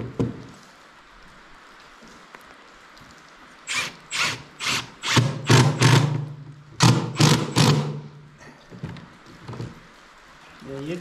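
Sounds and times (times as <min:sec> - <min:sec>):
cordless drill driving screws: 0:03.7 - 0:06.2, 0:06.8 - 0:08.0.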